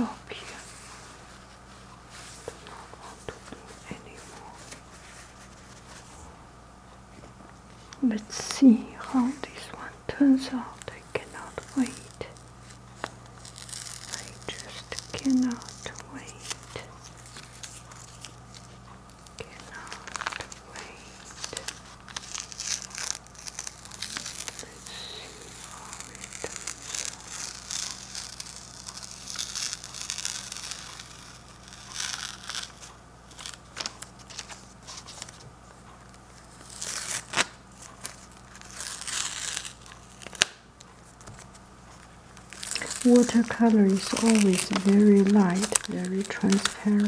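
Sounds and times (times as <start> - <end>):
paper crinkling: 10.6 - 47.0
tape ripping off paper: 10.9 - 35.4, 36.4 - 40.6, 42.4 - 47.0.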